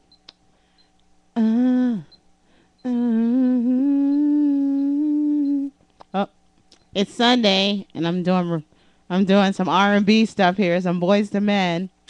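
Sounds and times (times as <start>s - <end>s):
woman singing long note: 2.9s - 5.7s.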